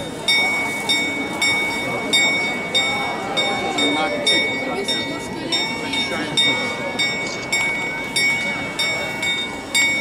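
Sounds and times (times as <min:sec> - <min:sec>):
clock bell striking: 0:00.0 - 0:10.0
crowd murmur: 0:00.0 - 0:10.0.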